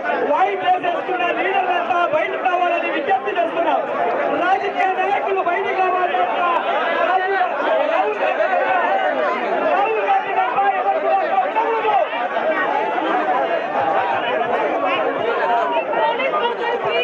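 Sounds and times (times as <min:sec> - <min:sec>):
crowd hubbub: 0:00.0 - 0:17.0.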